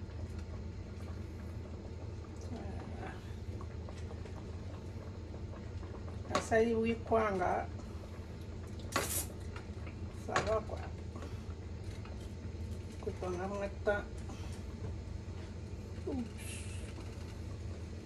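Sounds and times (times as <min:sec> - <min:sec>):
short hiss: 0:08.9 - 0:09.3.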